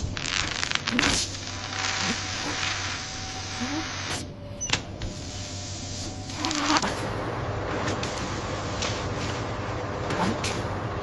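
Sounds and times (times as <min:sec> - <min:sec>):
electric buzzing: 0:00.0 - 0:04.2, 0:06.2 - 0:06.9
hiss: 0:00.0 - 0:04.3
low hum: 0:00.0 - 0:11.0.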